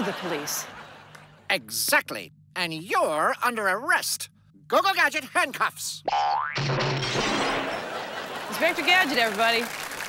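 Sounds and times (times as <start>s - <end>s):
cartoon spring boing: 6.1s - 7.6s.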